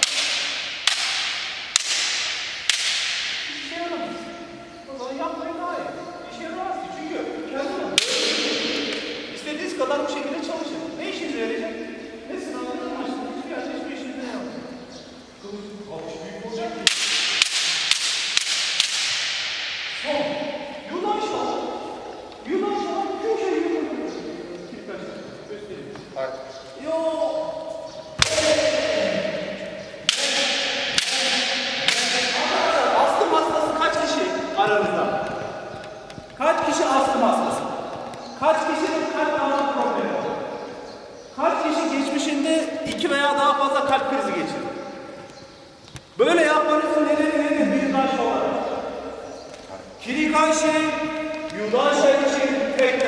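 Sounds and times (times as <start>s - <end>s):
bamboo sword striking armour: 0.0s - 3.5s.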